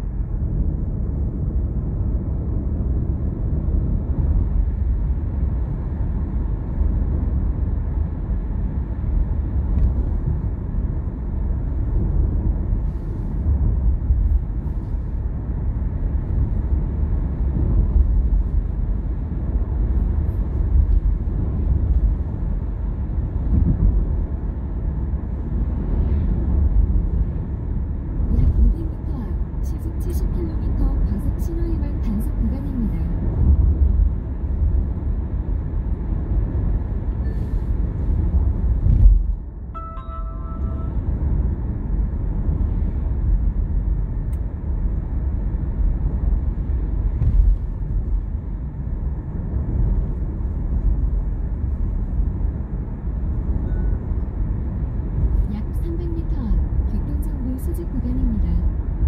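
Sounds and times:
car road rumble from inside: 0.0s - 59.0s
short electronic chime: 39.8s - 41.2s.

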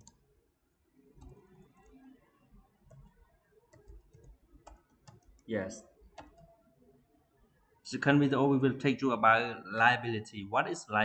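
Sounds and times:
faint keyboard clicks: 0.0s - 0.2s, 1.2s - 2.0s, 2.9s - 6.6s.

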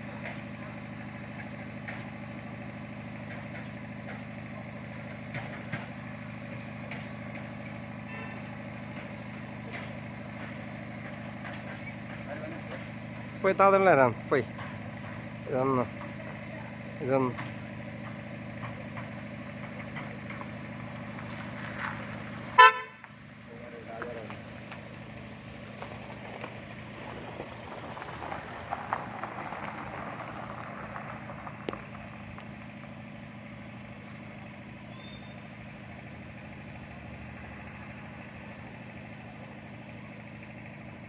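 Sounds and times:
street background: 0.0s - 41.0s
vehicle engine running: 0.0s - 41.0s
horn toot: 22.6s - 23.0s.

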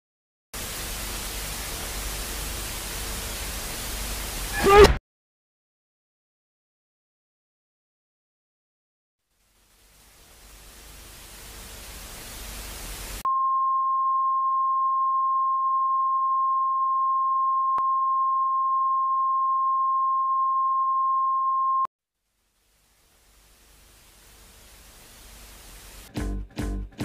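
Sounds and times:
static hiss: 0.6s - 4.6s, 9.3s - 13.2s, 22.3s - 26.1s
steady electronic beep tone: 13.3s - 21.9s.

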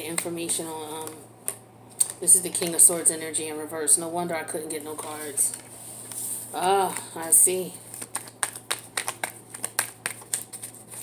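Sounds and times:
cards being shuffled: 7.9s - 11.0s.

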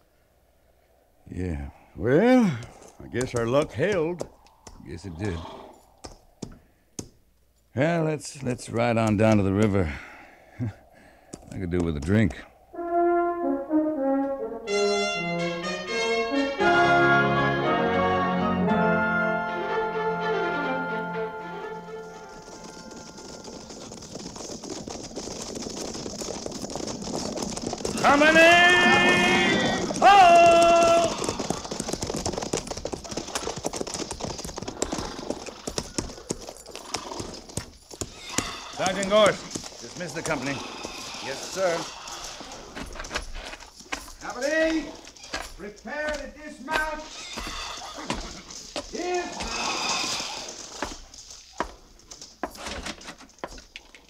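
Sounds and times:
horse hoofbeats: 2.3s - 7.2s, 8.3s - 12.6s, 14.7s - 54.0s
brass music: 12.7s - 22.5s.

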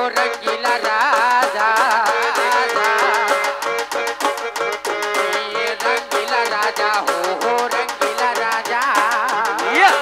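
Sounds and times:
folk music: 0.0s - 10.0s
steady drum beat: 0.0s - 10.0s.

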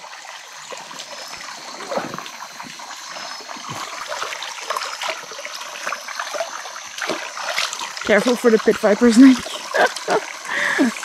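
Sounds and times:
stream trickling over rocks: 0.0s - 11.0s.

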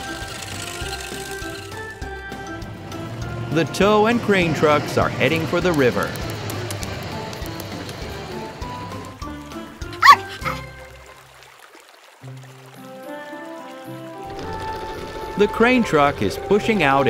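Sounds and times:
background music: 0.0s - 17.0s
cartoon puppy barking: 10.0s - 10.7s.

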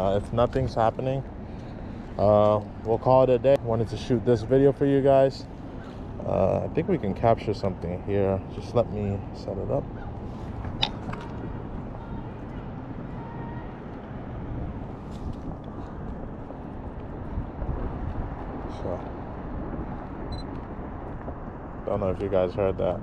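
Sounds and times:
road traffic hum: 0.0s - 23.0s
distant person yelling: 11.8s - 13.9s.

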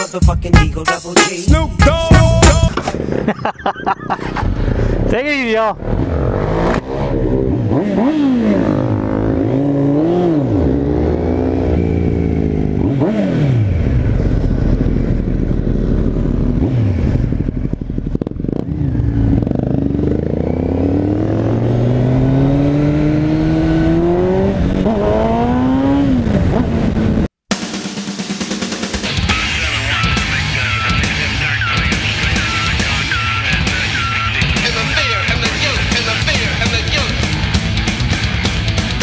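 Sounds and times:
rock music: 0.0s - 2.8s, 27.5s - 39.0s
motorcycle engine accelerating: 2.6s - 27.3s, 28.5s - 39.0s.

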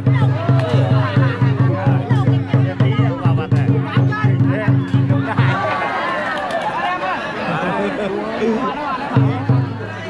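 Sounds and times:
large drum strokes: 0.0s - 5.6s, 9.2s - 9.8s
crowd chattering and calling out: 0.0s - 10.0s.

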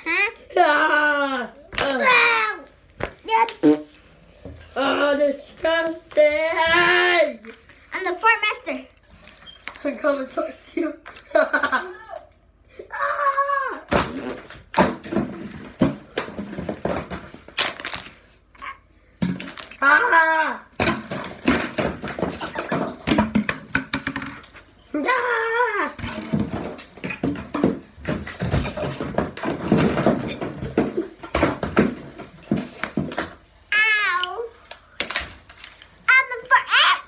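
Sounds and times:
toys tapping and knocking: 19.2s - 24.7s, 26.0s - 35.7s.

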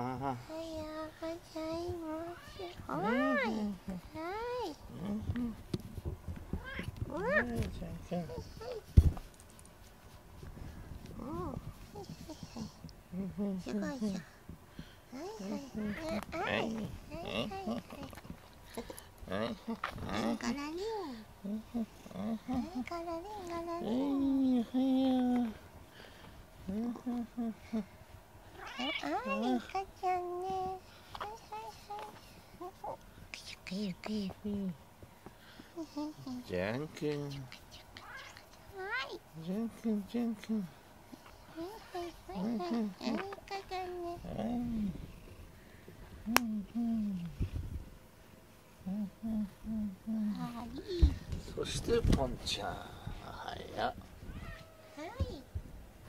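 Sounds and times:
cat meowing: 6.6s - 7.6s, 28.6s - 29.4s, 54.2s - 55.1s.

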